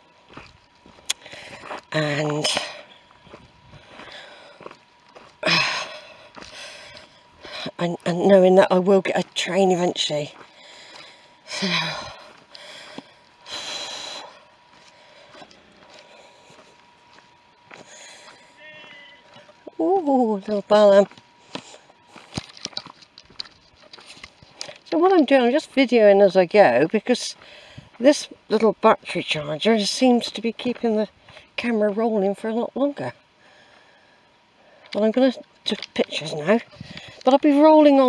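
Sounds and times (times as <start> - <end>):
footsteps on dirt path: 0.0 - 34.1, 34.7 - 38.0
breath noise on microphone: 27.4 - 28.0, 36.7 - 37.3.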